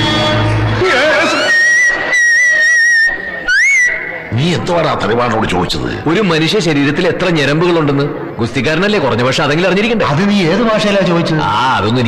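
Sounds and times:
high steady whistle: 0:01.1 - 0:04.3
short rising and falling whistle: 0:01.2 - 0:04.3.

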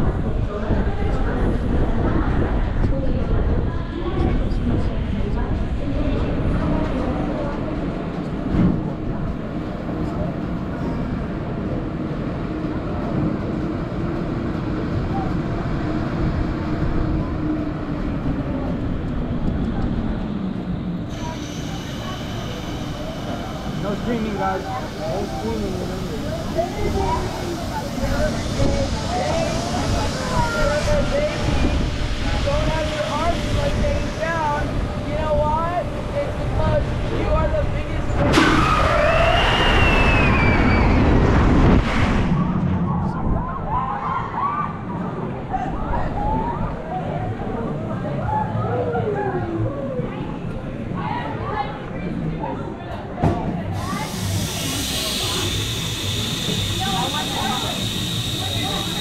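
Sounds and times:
wind rushing over microphone: 0:00.0 - 0:21.1, 0:26.2 - 0:47.7
faint high whine: 0:20.6 - 0:31.9, 0:53.9 - 0:59.0
riders' voices: 0:53.8 - 0:59.0.

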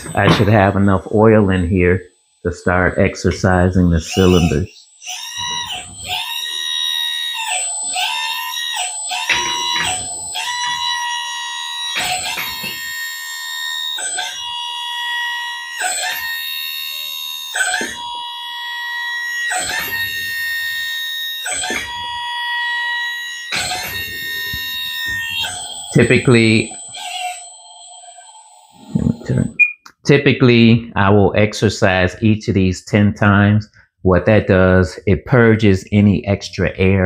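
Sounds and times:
hydraulic pump whining: 0:00.0 - 0:01.6, 0:02.7 - 0:29.8.

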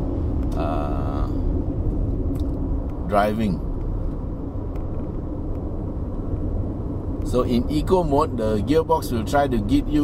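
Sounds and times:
car cabin road noise rumble: 0:00.0 - 0:10.0.

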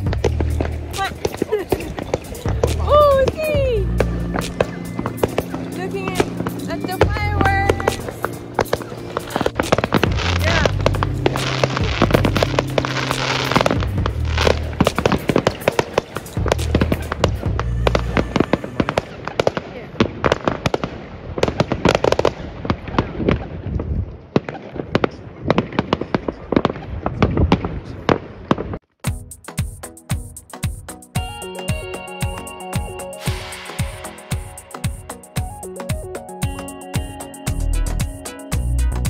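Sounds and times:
fireworks bangs and crackles: 0:00.0 - 0:28.8, 0:32.4 - 0:37.5.

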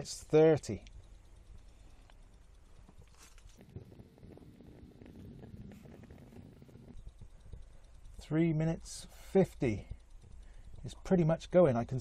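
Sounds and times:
stove flame rumbling: 0:00.0 - 0:12.0.

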